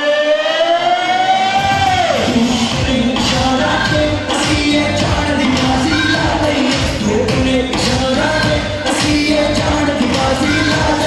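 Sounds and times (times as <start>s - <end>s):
man singing a long high note: 0.0s - 11.0s.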